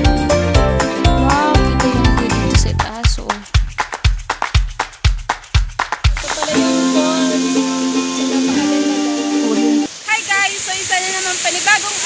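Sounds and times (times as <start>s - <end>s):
woman speaking: 1.2s - 3.5s, 10.1s - 12.0s
waterfall rushing: 6.1s - 12.0s.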